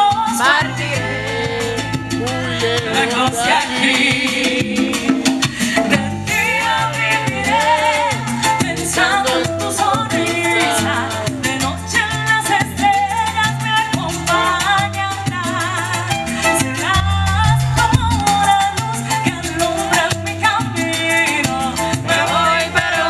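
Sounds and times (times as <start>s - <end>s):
conga drumming: 0.0s - 23.0s
salsa band playing: 0.0s - 23.0s
woman singing: 0.0s - 23.0s.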